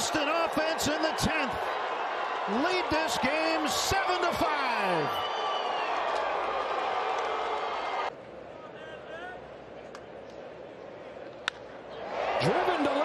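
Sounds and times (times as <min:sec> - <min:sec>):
ballpark crowd noise: 0:00.0 - 0:13.0.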